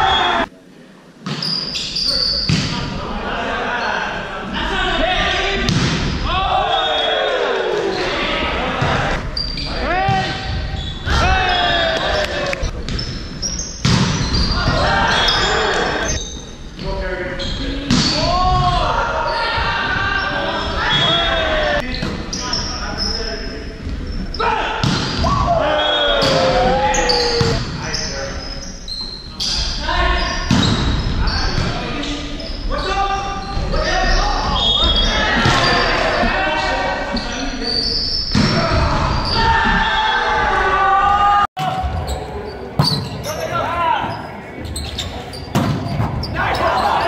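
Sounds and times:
players shouting: 0:03.0 - 0:12.8, 0:14.2 - 0:16.2, 0:18.0 - 0:21.9, 0:24.3 - 0:27.7, 0:32.6 - 0:37.6, 0:38.4 - 0:44.7, 0:46.1 - 0:47.0.

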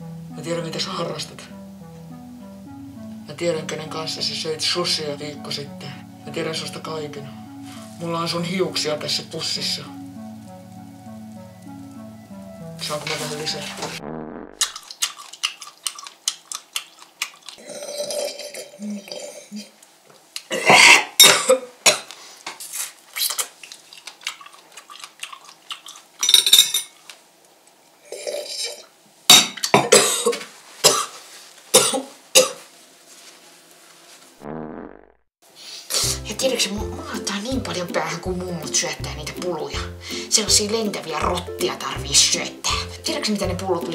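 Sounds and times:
cutlery clinking on a plate: 0:26.2 - 0:27.0.

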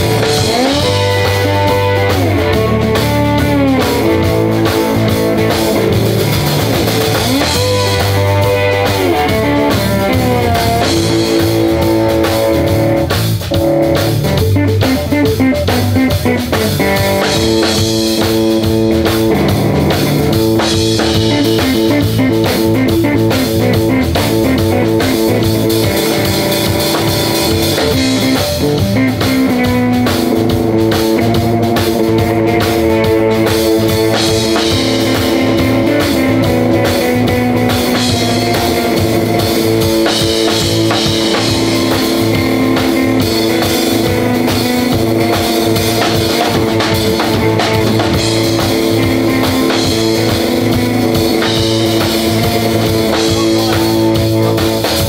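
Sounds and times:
drum kit: 0:00.0 - 0:55.0
electric guitar lead: 0:00.0 - 0:55.0.

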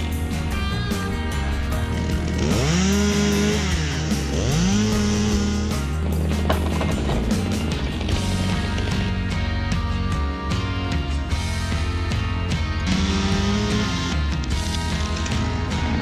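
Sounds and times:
background music: 0:00.0 - 0:16.0
chainsaw revving: 0:01.4 - 0:09.2, 0:12.7 - 0:16.0.

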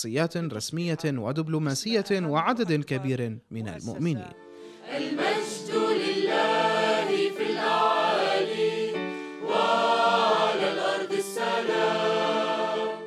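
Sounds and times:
mixed choir singing held chords: 0:04.4 - 0:13.0.

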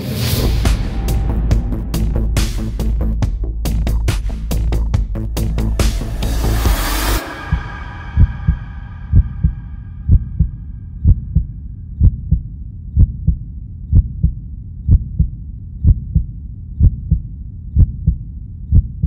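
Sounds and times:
heartbeat thumps: 0:00.4 - 0:19.0.

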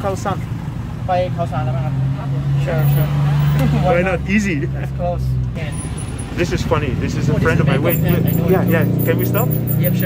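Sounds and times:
street traffic: 0:00.0 - 0:10.0
voices: 0:00.0 - 0:10.0.

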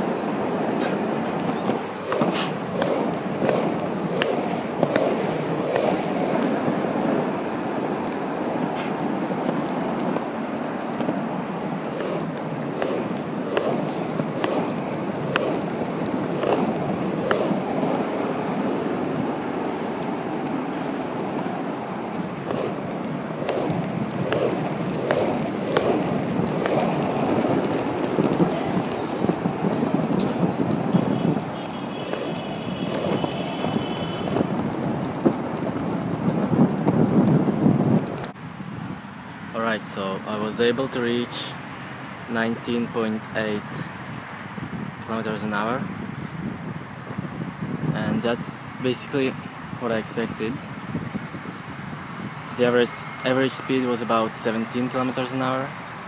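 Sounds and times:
skateboard wheels rolling on asphalt: 0:00.0 - 0:56.0.

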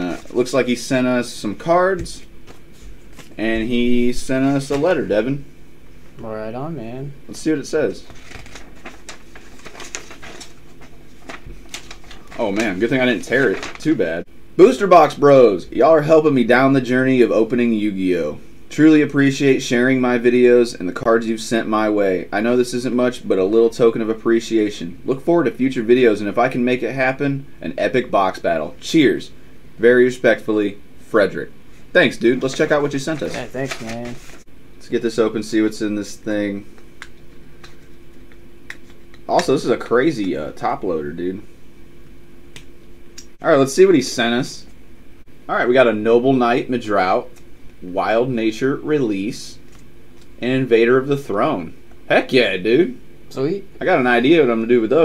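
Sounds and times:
envelope paper tearing and rustling: 0:08.0 - 0:14.0, 0:32.4 - 0:34.4.

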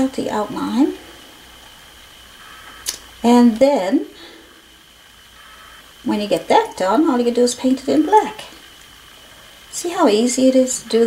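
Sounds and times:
thin high constant whine: 0:00.0 - 0:11.0.

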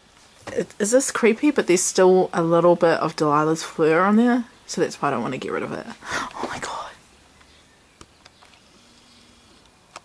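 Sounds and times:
person whispering: 0:06.2 - 0:07.0.

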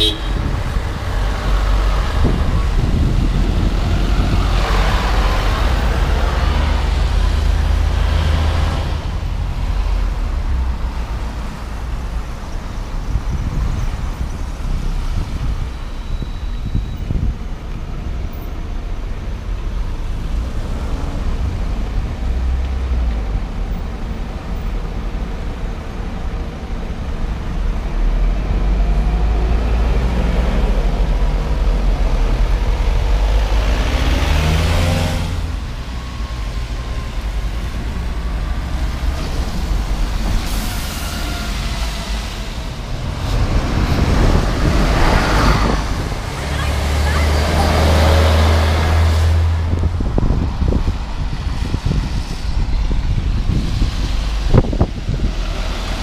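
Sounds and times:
diesel bus engine: 0:00.0 - 0:56.0
road traffic on wet road: 0:00.0 - 0:56.0
rush of tyre noise: 0:00.0 - 0:56.0.

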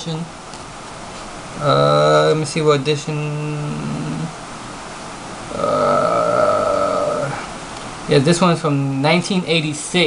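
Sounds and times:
man humming: 0:01.6 - 0:02.4, 0:03.1 - 0:04.4, 0:05.5 - 0:07.5
man's drawn-out uhh: 0:03.4 - 0:04.4, 0:05.5 - 0:07.5.

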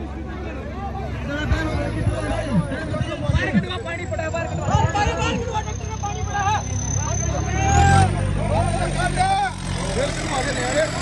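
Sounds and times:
tractor diesel engine under load: 0:00.0 - 0:11.0.

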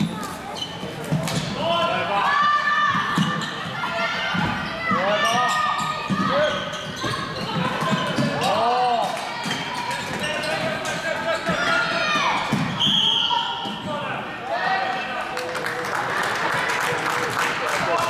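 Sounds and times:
shoes squeaking on court floor: 0:00.0 - 0:01.6, 0:03.0 - 0:03.8, 0:05.1 - 0:13.9.

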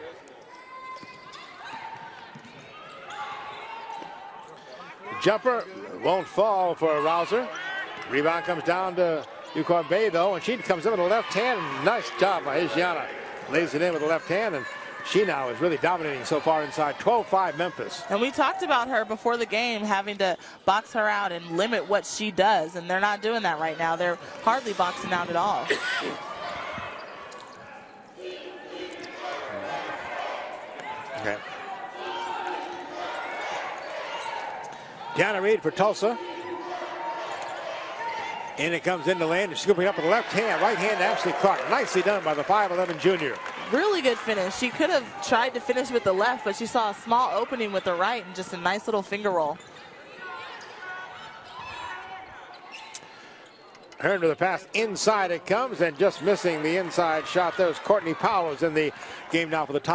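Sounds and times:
short high shoe squeaks: 0:52.6 - 0:54.1.

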